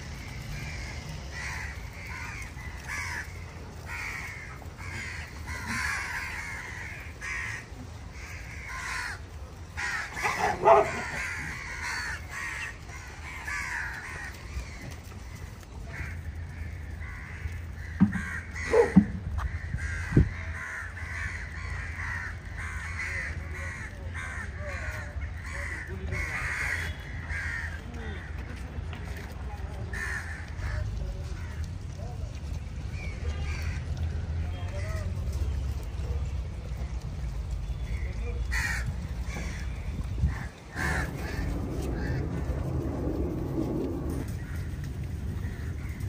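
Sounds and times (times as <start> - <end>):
crows cawing: 0.0 - 28.6, 29.2 - 31.9, 32.9 - 35.2, 37.9 - 46.0
steady low rumble: 38.8 - 46.0.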